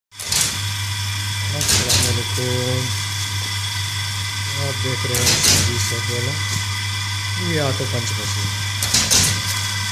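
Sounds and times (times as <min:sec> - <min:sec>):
electric motor humming: 0:00.2 - 0:09.9.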